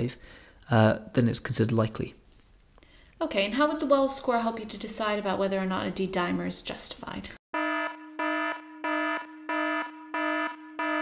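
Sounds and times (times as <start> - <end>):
steady electronic tone: 7.6 - 11.0.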